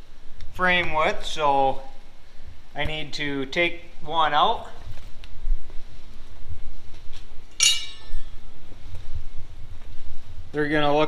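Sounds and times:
low rumble of handling noise: 0.0 - 11.0
steel clinking: 7.6 - 8.4.

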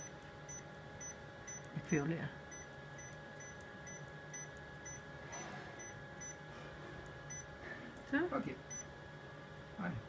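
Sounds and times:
copier electrical hum: 0.0 - 10.0.

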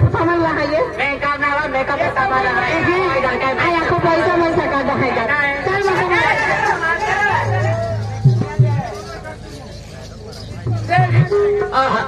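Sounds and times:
people talking over loudspeakers: 0.0 - 12.0.

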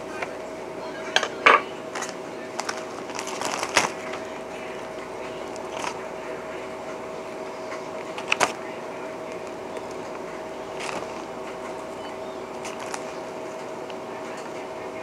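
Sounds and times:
steady low hum: 0.0 - 15.0
plastic bag rustling: 1.9 - 4.3, 5.4 - 6.1, 7.9 - 8.6, 9.3 - 11.6, 12.6 - 13.3.

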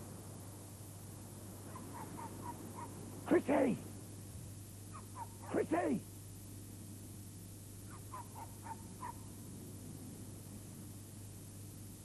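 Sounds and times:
steady low hum: 0.0 - 12.0
short high animal calls: 7.9 - 9.2.

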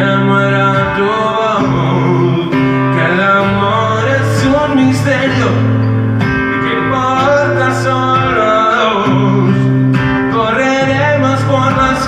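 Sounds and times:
acoustic guitar playing: 0.0 - 12.0
man singing: 0.0 - 12.0.

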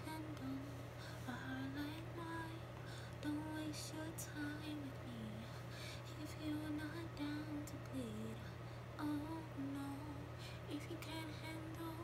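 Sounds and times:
faint low hum: 0.0 - 12.0
woman singing softly: 0.0 - 12.0.

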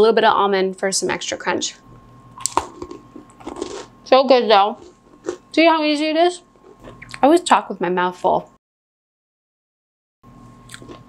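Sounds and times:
chewing crunchy biscuit: 2.4 - 4.0, 4.7 - 5.6, 6.6 - 7.2, 10.6 - 11.0.

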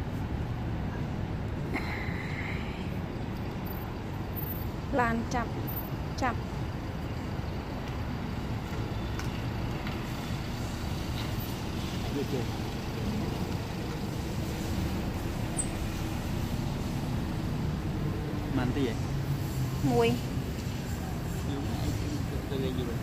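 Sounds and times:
road traffic rumble: 0.0 - 23.0.

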